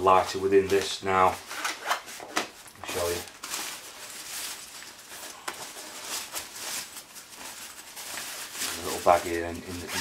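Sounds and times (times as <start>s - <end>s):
fabric bag rustling: 1.2s - 10.0s.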